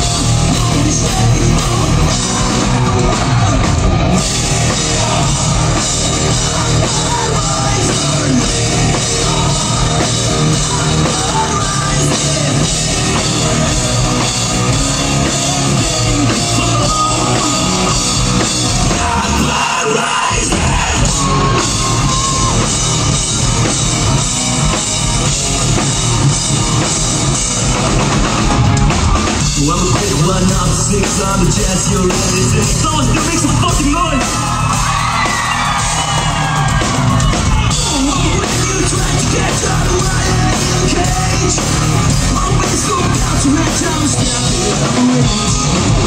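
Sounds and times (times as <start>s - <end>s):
singer yelling and singing: 0.0s - 27.0s, 28.6s - 46.0s
hard rock band playing live: 0.0s - 46.0s.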